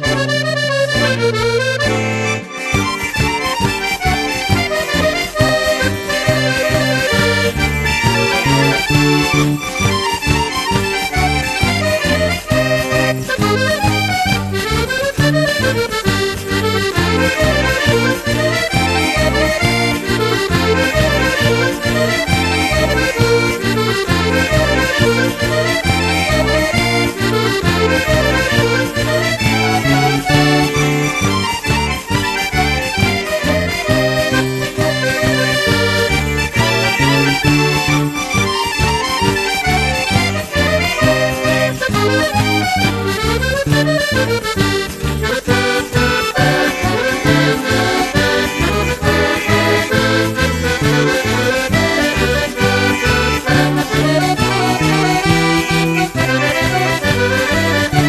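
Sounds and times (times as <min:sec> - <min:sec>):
folk band dance music with accordion: 0:00.0 - 0:58.0.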